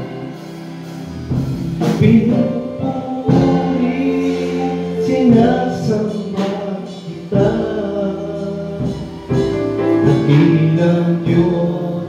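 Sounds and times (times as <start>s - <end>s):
electric keyboard: 0.0s - 12.0s.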